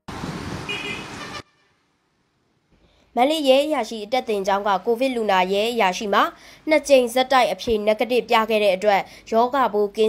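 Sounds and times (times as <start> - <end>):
road traffic noise: 0.0 - 3.1
short vehicle horn toot: 0.7 - 1.8.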